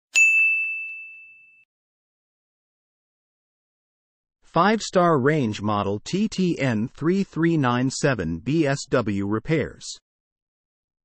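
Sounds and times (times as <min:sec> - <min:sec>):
bell-like logo chime: 0:00.2 - 0:01.7.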